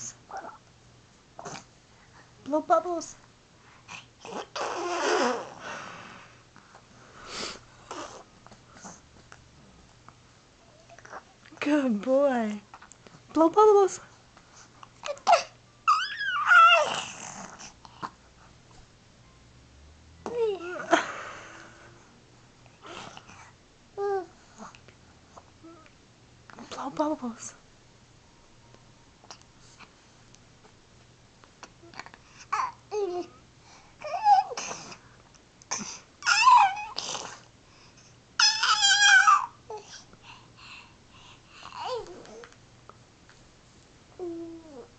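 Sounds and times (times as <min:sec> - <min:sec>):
baby squealing: 0:04.3 - 0:05.6, 0:15.1 - 0:17.2, 0:36.2 - 0:37.0, 0:38.4 - 0:39.5
breathy sounds: 0:39.7 - 0:42.5.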